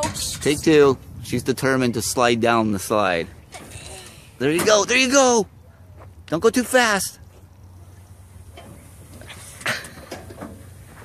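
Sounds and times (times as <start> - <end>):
wind rumble on microphone: 0.0 - 4.4.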